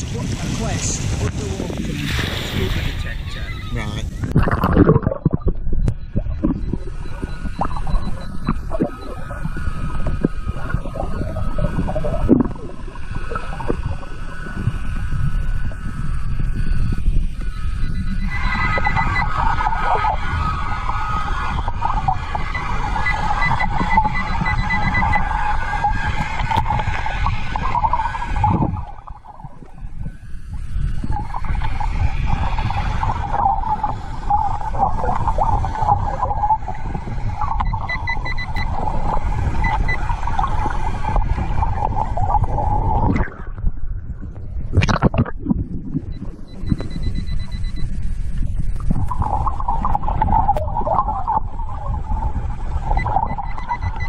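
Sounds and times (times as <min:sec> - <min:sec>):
low rumble of water movement: 0:00.0 - 0:54.0
metal detector warbling beep: 0:03.3 - 0:31.7, 0:32.7 - 0:43.4, 0:46.0 - 0:52.0, 0:52.8 - 0:54.0.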